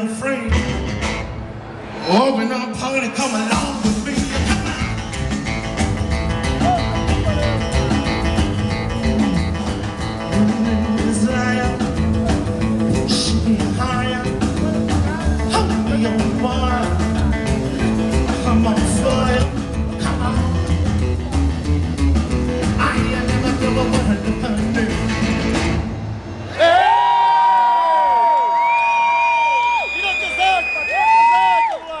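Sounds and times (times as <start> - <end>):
rockabilly band playing: 0.0 - 1.4, 3.2 - 26.2.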